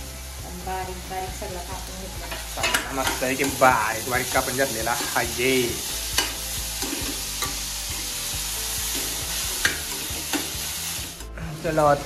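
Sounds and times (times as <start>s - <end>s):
vegetables sizzling in a pan: 0.0s - 12.0s
steel spoon clicking against pan: 9.6s - 10.6s.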